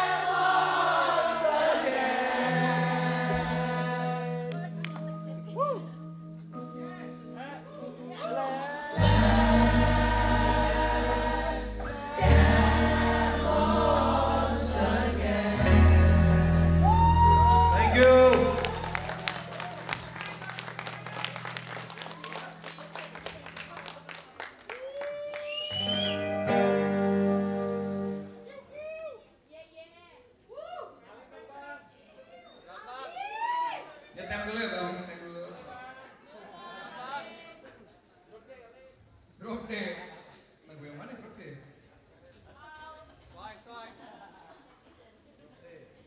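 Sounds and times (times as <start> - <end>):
electric guitars and bass: 2.5 - 24.0, 25.8 - 28.6
live indie rock band playing: 4.6 - 23.6, 25.7 - 28.5.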